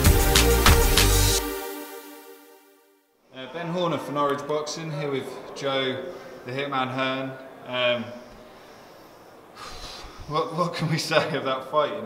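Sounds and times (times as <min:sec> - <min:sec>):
sharp sniff through nose: 0:08.2 - 0:10.3.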